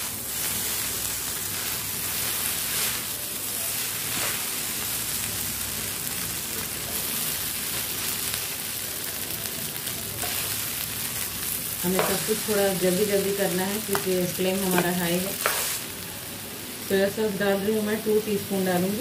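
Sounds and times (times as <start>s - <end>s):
food sizzling in a pan: 0.0s - 19.0s
stirring scrapes in a pan: 1.5s - 4.5s.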